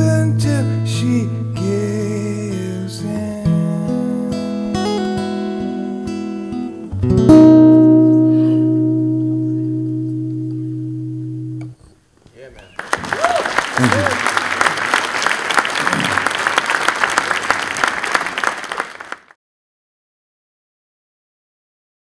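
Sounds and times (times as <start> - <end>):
acoustic guitar chords: 0.0 - 11.9.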